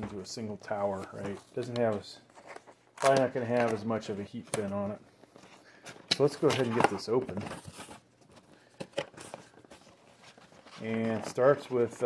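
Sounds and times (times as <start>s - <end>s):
cardboard and paper rustling: 0.8s - 12.0s.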